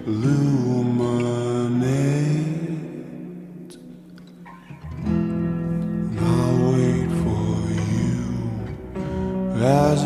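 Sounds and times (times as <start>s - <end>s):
guitar chord ringing: 0.0s - 10.0s
slowed reverb-heavy song: 0.0s - 10.0s.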